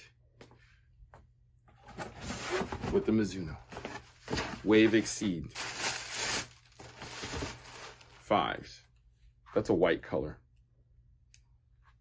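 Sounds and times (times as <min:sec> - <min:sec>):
cardboard box scraping and rustling: 0:01.8 - 0:03.1.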